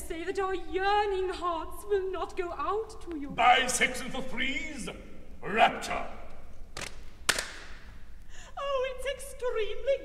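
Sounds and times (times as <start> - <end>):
sharp cracks with echo: 6.2 - 8.1.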